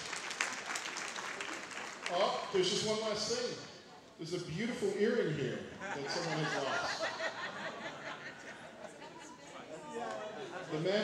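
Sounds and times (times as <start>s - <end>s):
audience applauding: 0.0s - 2.9s.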